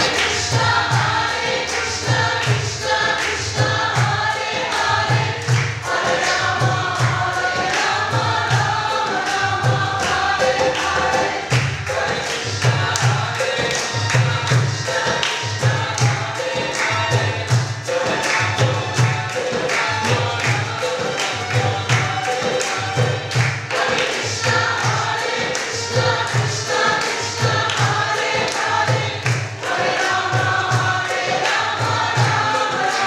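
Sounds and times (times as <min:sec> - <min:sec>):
group chanting in unison: 0:00.0 - 0:33.0
hand drum beat: 0:00.0 - 0:33.0.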